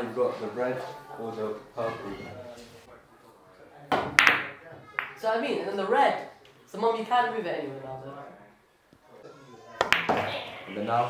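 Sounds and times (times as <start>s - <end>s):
pool balls clacking: 9.8s - 10.7s.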